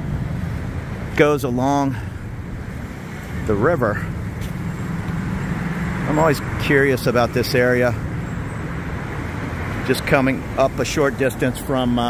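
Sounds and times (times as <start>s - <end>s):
low engine hum: 0.0s - 12.0s
passing vehicles: 0.0s - 12.0s.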